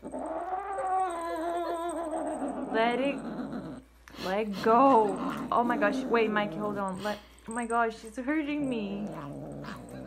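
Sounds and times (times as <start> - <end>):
kitten growl-yowling: 0.0 - 3.8, 8.9 - 10.0.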